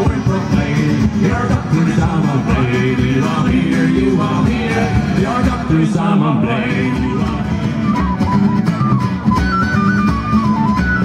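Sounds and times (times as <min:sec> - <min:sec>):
frame drum: 0:00.0 - 0:06.0
acoustic guitars playing folk: 0:00.0 - 0:11.0.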